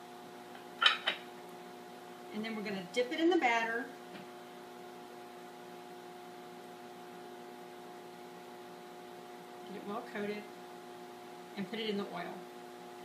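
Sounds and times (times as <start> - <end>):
cooktop electrical hum with hiss: 0.0 - 13.0.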